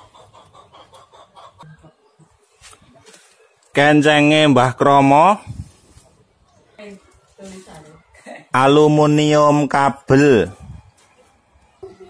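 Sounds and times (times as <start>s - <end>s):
faint clucking calls: 0.0s - 3.6s.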